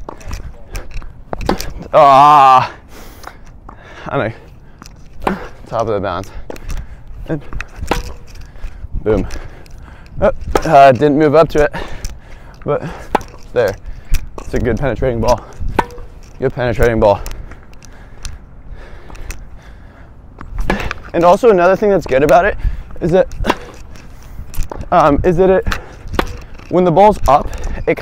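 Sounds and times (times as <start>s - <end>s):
tennis ball bouncing on hard court: 7.8s - 8.2s, 15.7s - 16.1s
tennis ball struck by racket: 7.8s - 8.3s, 13.0s - 13.4s, 15.7s - 16.2s, 23.4s - 23.8s, 26.1s - 26.4s.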